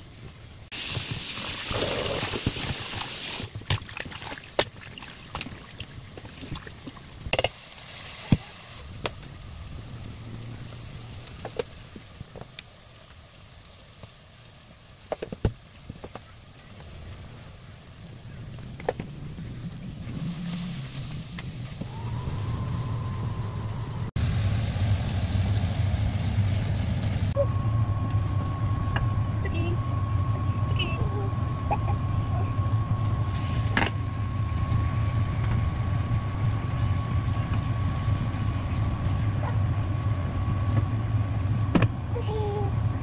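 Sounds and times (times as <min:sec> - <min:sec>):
steady low hum: 0:16.7 - 0:43.0.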